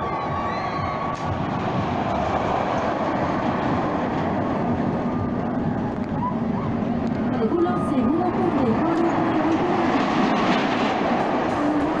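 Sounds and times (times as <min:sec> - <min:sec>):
roller coaster running on track: 0:00.0 - 0:12.0.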